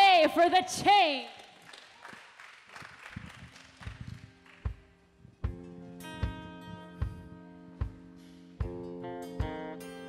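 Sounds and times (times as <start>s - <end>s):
soft low thumps: 5.4s - 8.8s.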